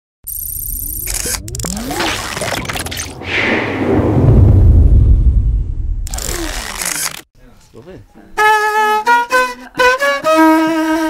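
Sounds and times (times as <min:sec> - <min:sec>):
whooshes and rising glides: 0:01.6 - 0:06.3
deep rumbling swell: 0:02.2 - 0:06.3.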